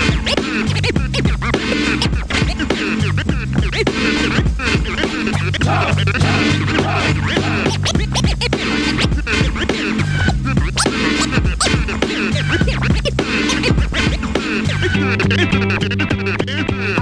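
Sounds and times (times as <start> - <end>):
looping beat and bassline: 0.0 - 16.0
vinyl record scratching: 0.0 - 16.0.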